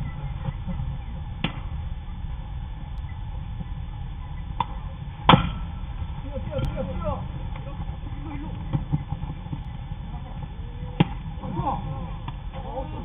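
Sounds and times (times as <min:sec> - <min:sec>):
steady low rumble: 0:00.0 - 0:13.0
baseball bat hitting ball: 0:04.6 - 0:05.8.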